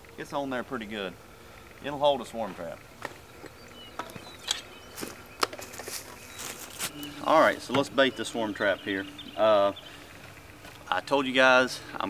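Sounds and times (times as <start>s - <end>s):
faint bird chirps: 3.2s - 12.0s.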